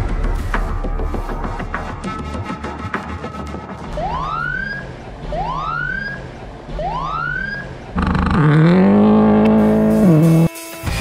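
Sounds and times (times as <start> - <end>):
low steady drone: 3.7 - 10.5
siren whoops: 3.9 - 9.6.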